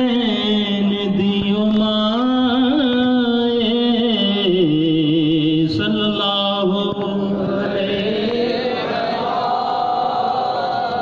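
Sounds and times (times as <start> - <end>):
man chanting over loudspeaker: 0.0 - 11.0.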